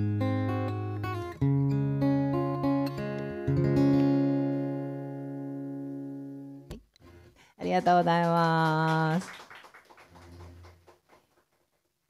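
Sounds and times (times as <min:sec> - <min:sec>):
acoustic guitar chord ringing out: 0:00.0 - 0:07.2.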